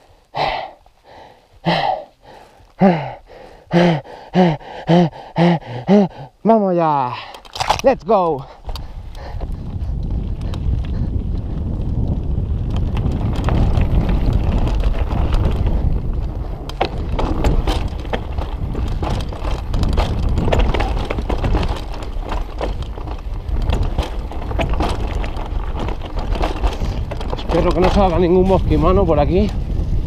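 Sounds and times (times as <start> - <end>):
bike tyres rattling over dirt: 6.6 - 30.0
bike clattering over bumps: 7.4 - 30.0
wind buffeting microphone: 7.6 - 30.0.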